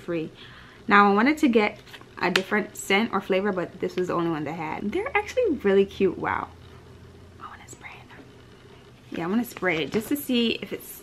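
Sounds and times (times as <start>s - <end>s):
low room hum: 0.0s - 11.0s
woman whispering: 7.4s - 8.3s.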